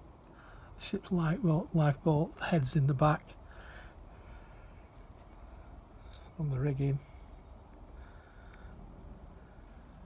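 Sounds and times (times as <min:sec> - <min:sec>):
low outdoor rumble: 0:00.0 - 0:10.0
person speaking: 0:01.2 - 0:03.3, 0:06.4 - 0:07.2.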